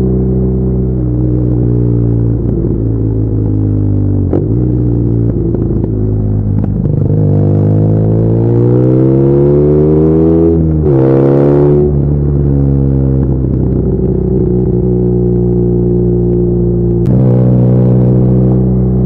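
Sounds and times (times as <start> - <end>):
motorcycle engine revving: 0.0 - 19.0.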